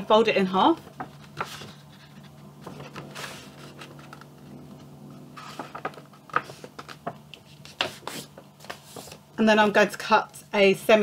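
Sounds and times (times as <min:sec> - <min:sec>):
steady low hum: 0:00.0 - 0:09.7
card folding crinkles: 0:00.8 - 0:09.3.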